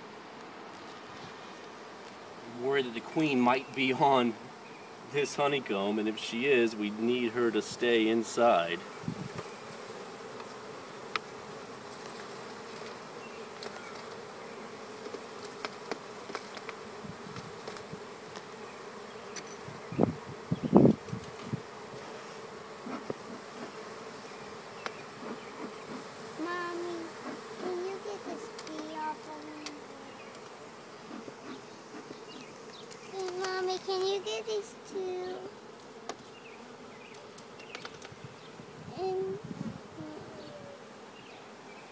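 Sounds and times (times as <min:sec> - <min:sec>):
honeybees buzzing: 0:00.0 - 0:41.9.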